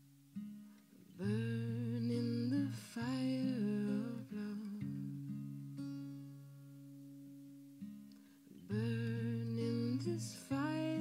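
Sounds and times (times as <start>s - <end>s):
acoustic guitar notes: 0.0s - 11.0s.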